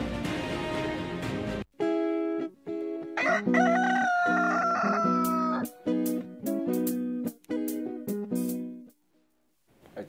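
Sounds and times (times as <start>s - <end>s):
rooster crowing: 3.2s - 5.7s.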